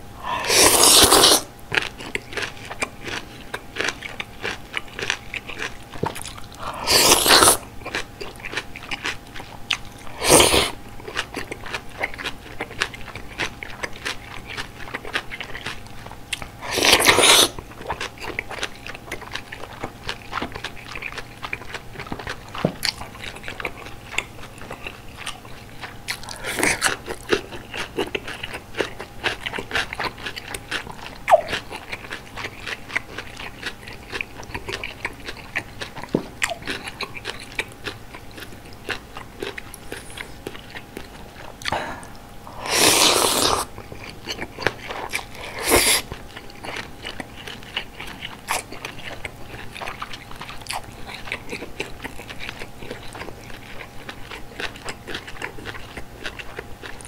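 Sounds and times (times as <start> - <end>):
slurping noodles: 0.2 - 1.5, 6.6 - 7.6, 10.1 - 10.8, 16.6 - 17.6, 42.5 - 43.7, 45.0 - 46.1
wet chewing and crunching: 0.3 - 57.0.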